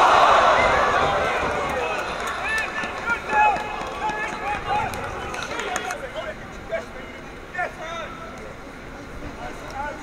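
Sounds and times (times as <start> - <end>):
people shouting and calling: 0.0 - 5.9.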